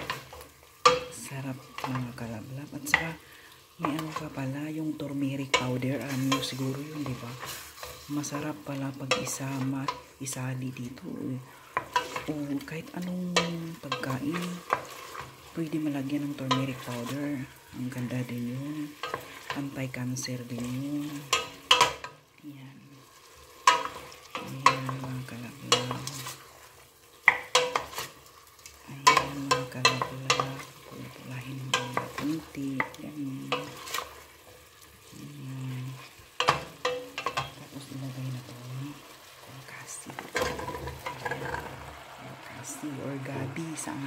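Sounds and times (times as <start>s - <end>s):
meat sizzling in oil: 0.0s - 44.0s
wooden spoon scraping a pot: 5.0s - 10.2s, 11.4s - 22.2s, 22.9s - 42.0s.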